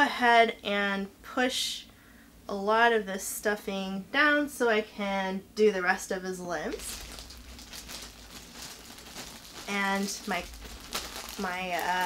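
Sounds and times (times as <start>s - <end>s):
low room hum: 0.0s - 12.0s
stuffing and fabric rustling: 6.6s - 12.0s.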